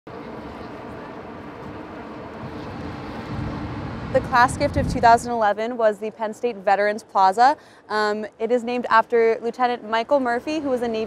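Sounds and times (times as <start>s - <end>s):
vehicle traffic rumble: 0.1s - 5.6s.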